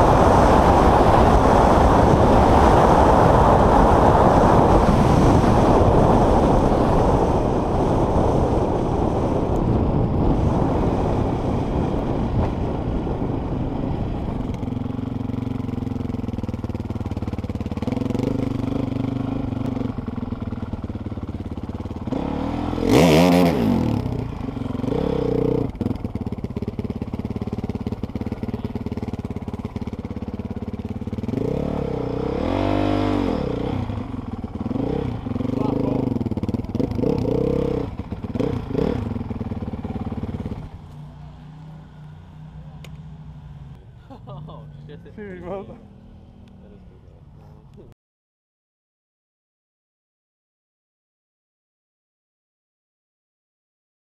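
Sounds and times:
dirt bike engine running: 0.0s - 46.6s.

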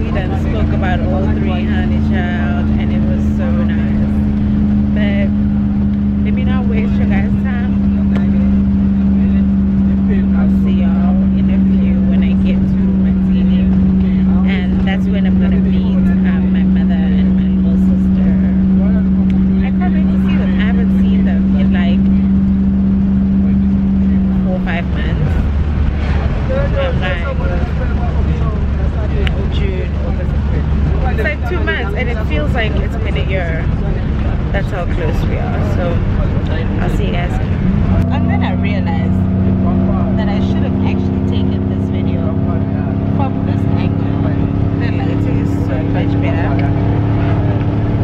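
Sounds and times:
bus engine drone: 0.0s - 48.0s
low road rumble: 0.0s - 48.0s.

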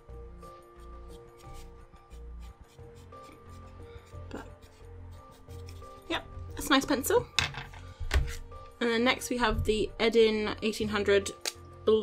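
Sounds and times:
background music: 0.0s - 12.0s
pencil scratching on paper: 0.8s - 6.2s.

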